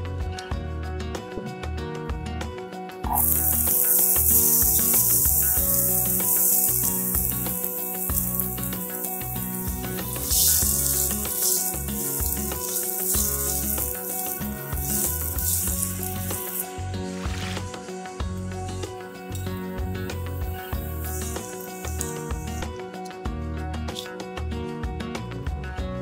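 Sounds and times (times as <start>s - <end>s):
onion sizzling in hot oil: 3.1s - 22.7s.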